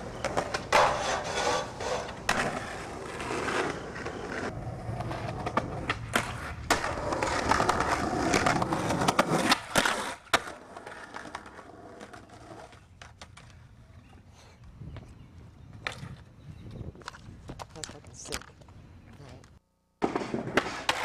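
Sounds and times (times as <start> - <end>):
skateboard clacking on ground: 0.0 - 13.6, 20.0 - 21.0
skateboard wheels rolling on pavement: 0.0 - 17.8, 20.0 - 21.0.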